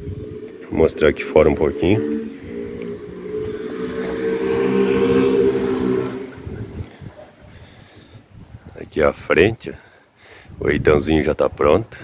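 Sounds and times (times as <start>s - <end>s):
vehicle engine passing by: 0.0s - 7.3s.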